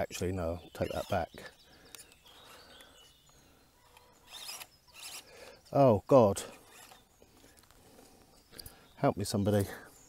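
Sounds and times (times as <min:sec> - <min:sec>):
distant birds chirping: 0:00.0 - 0:10.0.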